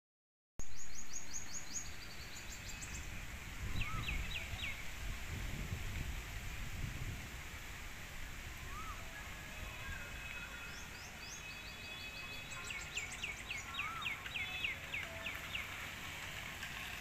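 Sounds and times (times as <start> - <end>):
birds chirping: 0.6 - 4.9, 8.7 - 15.9.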